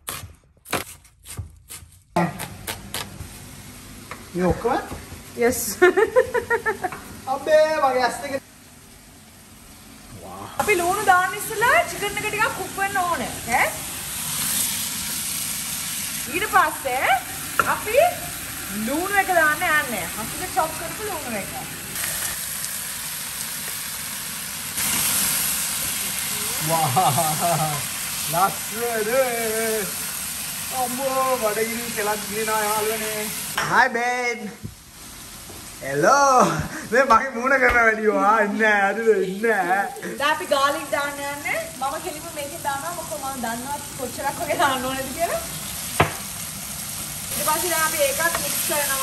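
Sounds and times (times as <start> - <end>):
knife chopping on wooden board: 0.0 - 3.2, 46.0 - 46.2
chicken sizzling in a pan: 3.2 - 37.5, 38.3 - 49.0.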